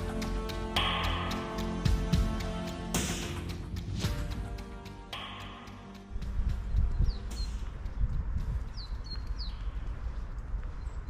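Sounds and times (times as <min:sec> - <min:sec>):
footsteps on stone paving: 0:06.1 - 0:11.0
wind on microphone: 0:06.1 - 0:11.0
small bird chirping: 0:06.5 - 0:10.0.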